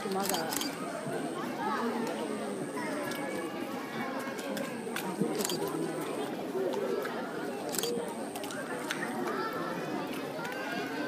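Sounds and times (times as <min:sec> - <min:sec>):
spectators chattering: 0:00.0 - 0:11.0
camera shutter clicks: 0:00.1 - 0:00.8, 0:05.4 - 0:05.7, 0:07.7 - 0:08.0.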